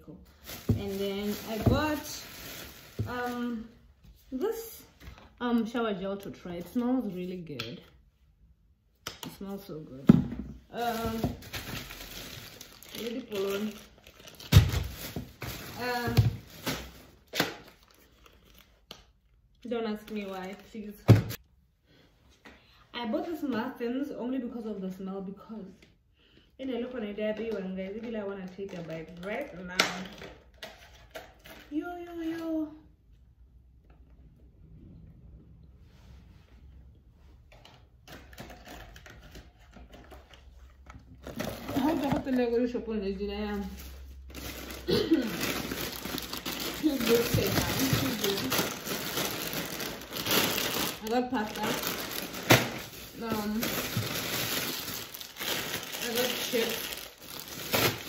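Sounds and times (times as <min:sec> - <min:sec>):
plastic packaging rustling: 0:00.2 - 0:03.8, 0:10.7 - 0:18.9, 0:20.0 - 0:21.4, 0:37.5 - 0:42.7, 0:43.6 - 0:58.0
plastic container crackling: 0:00.3 - 0:03.7, 0:10.7 - 0:18.6, 0:41.1 - 0:42.6, 0:43.6 - 0:58.0
person speaking: 0:41.6 - 0:43.8, 0:46.6 - 0:49.0, 0:50.8 - 0:52.2, 0:53.0 - 0:54.0, 0:55.9 - 0:56.9.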